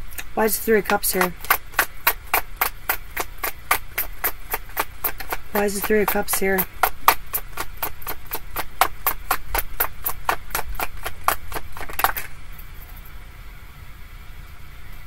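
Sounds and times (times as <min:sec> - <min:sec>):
cards being shuffled: 0:00.2 - 0:12.4.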